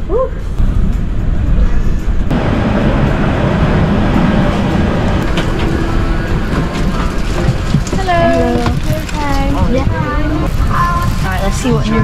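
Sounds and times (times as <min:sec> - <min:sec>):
airliner air systems rumble: 0:00.4 - 0:10.5.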